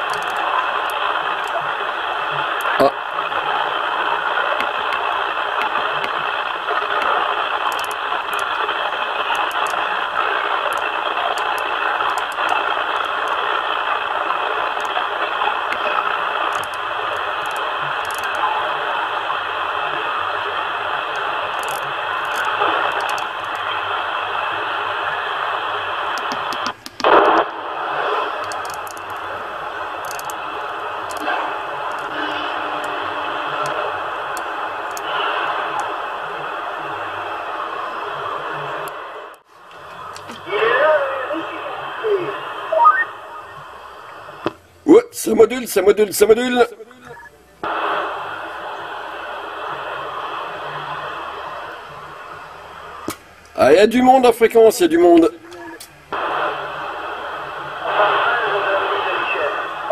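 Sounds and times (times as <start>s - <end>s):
radio static and interference: 0.0s - 52.5s, 55.1s - 59.9s
faint radio voices: 0.0s - 53.0s, 53.6s - 59.9s.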